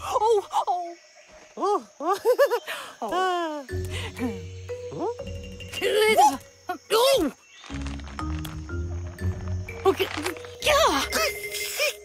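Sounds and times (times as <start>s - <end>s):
background music low sustained notes: 3.5s - 11.8s.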